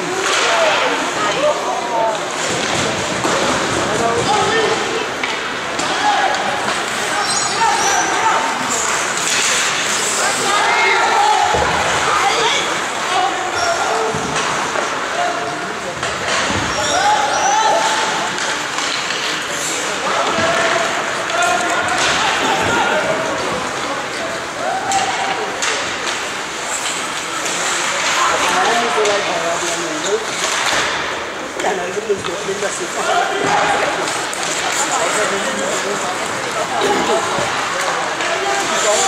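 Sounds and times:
hockey sticks and puck knocking: 0:02.1 - 0:07.5, 0:17.8 - 0:22.8, 0:24.9 - 0:39.0
voices shouting: 0:04.2 - 0:15.6, 0:16.7 - 0:18.4.

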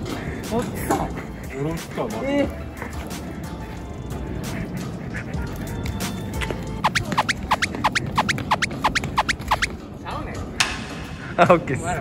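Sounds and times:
quick falling cartoon chirps: 0:06.8 - 0:09.7.

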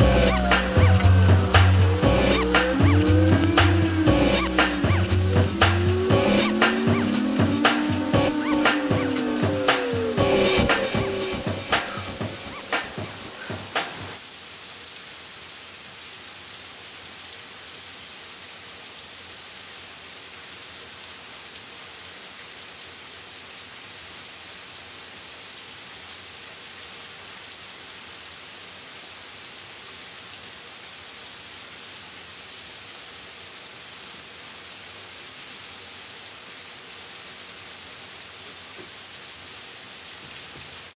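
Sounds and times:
song beats: 0:00.0 - 0:14.2
steady hiss: 0:00.0 - 0:41.0.

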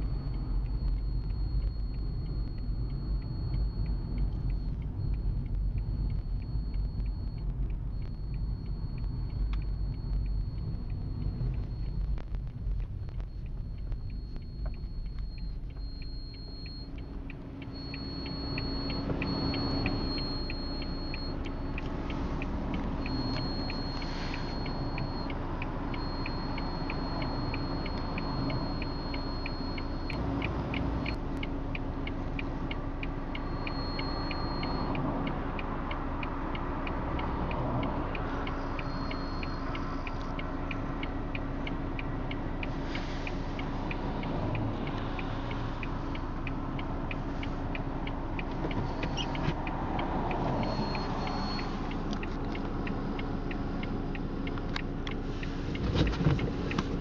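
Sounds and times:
flasher relay ticking: 0:00.0 - 0:55.5
car engine running: 0:00.0 - 0:57.0.

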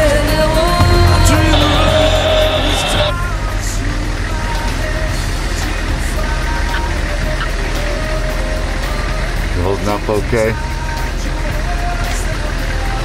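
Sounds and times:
faint background music: 0:00.0 - 0:13.0
vehicle engine drone and road noise: 0:00.0 - 0:13.0.

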